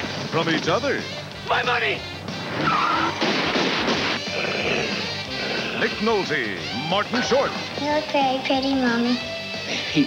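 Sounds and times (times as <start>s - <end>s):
music: 0.0s - 10.0s
car tyres squealing: 2.6s - 3.2s.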